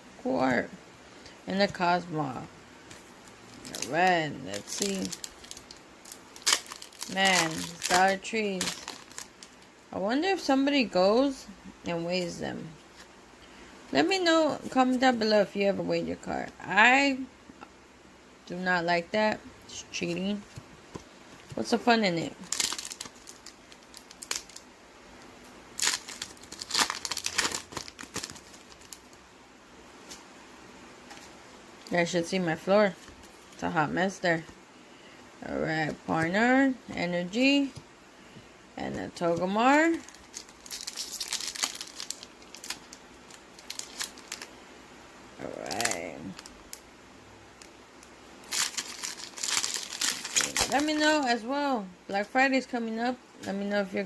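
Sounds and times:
foil wrapper crinkling: 2.9 - 9.7, 21.4 - 24.7, 25.7 - 29.2, 39.2 - 44.6, 45.4 - 46.8, 47.6 - 51.4.

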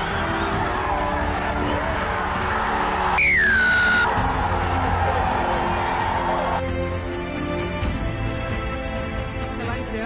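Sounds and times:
background music: 0.0 - 10.0
falling whistle-like tone: 3.2 - 4.1.

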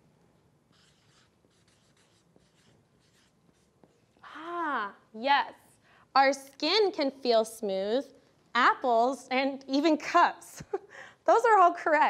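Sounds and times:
marker scratching on paper: 0.7 - 4.2.

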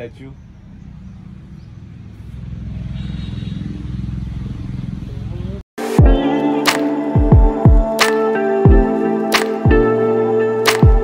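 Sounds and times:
vehicle engine rumble: 0.0 - 5.6
music: 5.8 - 11.0.

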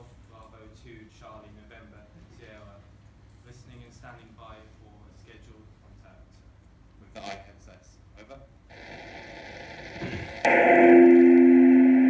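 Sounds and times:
radio static: 8.7 - 12.0.

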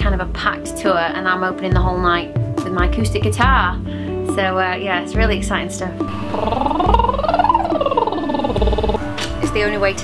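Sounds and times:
woman's vocal siren: 6.1 - 9.2.

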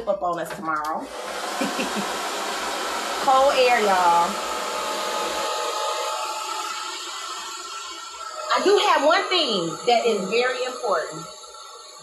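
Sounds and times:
hair dryer whirring: 0.7 - 12.0.

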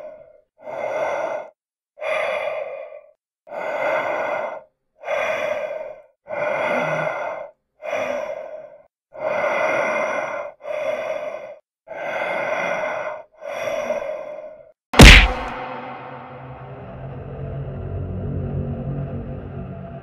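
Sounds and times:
heavy breathing behind mask: 0.0 - 16.1.

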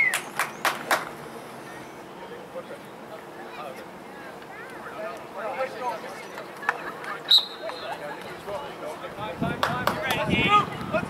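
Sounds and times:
sharp hand claps: 0.0 - 1.1, 9.6 - 10.2
open-air background: 0.0 - 11.0.

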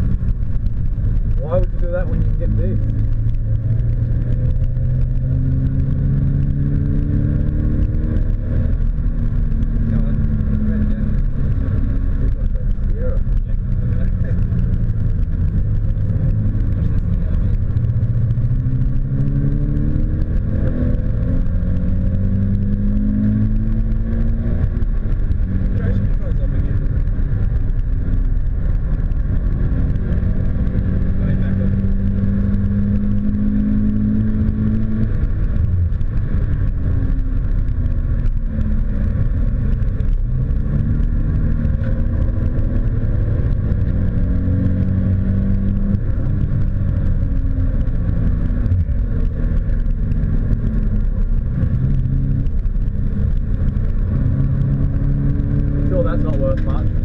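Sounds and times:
car engine accelerating: 0.0 - 57.0
road and tyre noise: 0.0 - 57.0.

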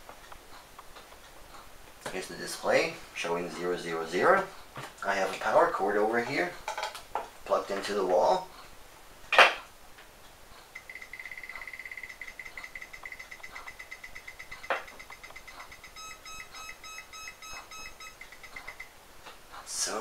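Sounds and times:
slower lower pulsing beep: 10.8 - 18.9
fast high-pitched alarm beeping: 10.8 - 19.0.

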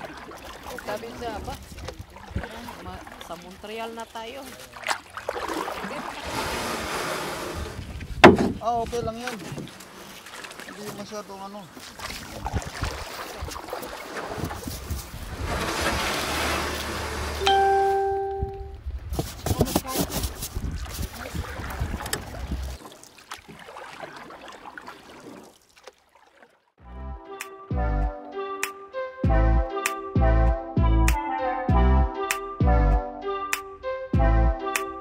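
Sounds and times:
wind buffeting microphone: 0.9 - 3.8, 6.2 - 9.7, 12.0 - 17.2, 18.5 - 22.8.

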